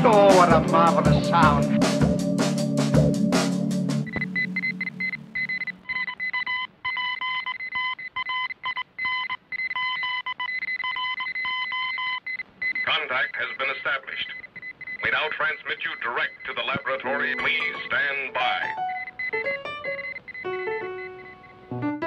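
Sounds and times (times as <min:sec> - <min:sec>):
music beat: 0:00.0 - 0:05.8, 0:17.2 - 0:21.5
low electronic tone: 0:04.0 - 0:06.0
high electronic tones: 0:04.0 - 0:06.3, 0:16.8 - 0:21.7.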